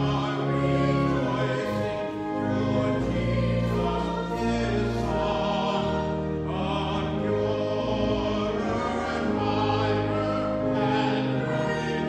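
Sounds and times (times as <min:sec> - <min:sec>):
sustained low accompaniment: 0:00.0 - 0:12.0
two women singing a hymn: 0:00.0 - 0:12.0.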